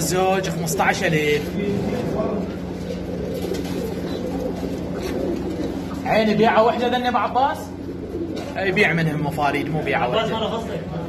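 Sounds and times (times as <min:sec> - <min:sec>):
pigeons cooing: 0:00.0 - 0:11.0
steady low hum: 0:00.0 - 0:11.0.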